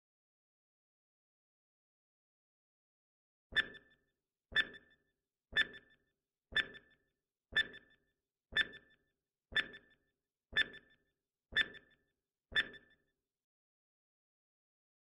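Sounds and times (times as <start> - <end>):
timer tick with brief ring: 5.6 - 6.0, 6.6 - 7.0, 10.6 - 11.0.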